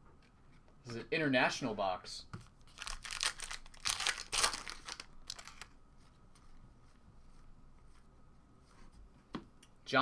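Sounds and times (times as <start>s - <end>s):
foil wrapper crinkling: 2.7s - 5.7s
faint handling sounds: 4.5s - 9.7s.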